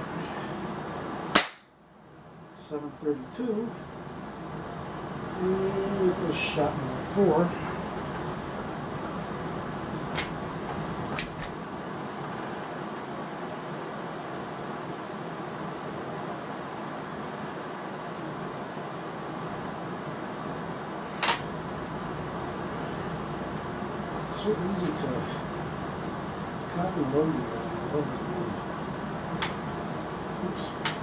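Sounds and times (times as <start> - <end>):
background hum: 0.0 - 31.0.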